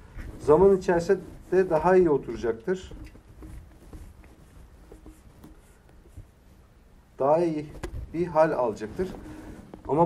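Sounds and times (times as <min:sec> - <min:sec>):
soft ticks and rustles: 0:00.0 - 0:06.7, 0:07.5 - 0:10.0.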